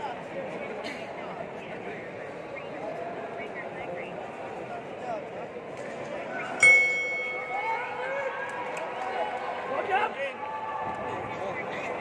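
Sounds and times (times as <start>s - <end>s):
crowd voices and shouts: 0.0s - 12.0s
fight bell ringing: 6.6s - 8.0s.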